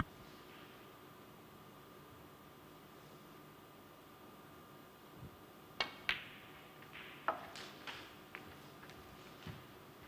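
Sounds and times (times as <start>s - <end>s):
cue tip striking ball: 5.8s - 8.7s
snooker balls clicking: 5.8s - 10.0s.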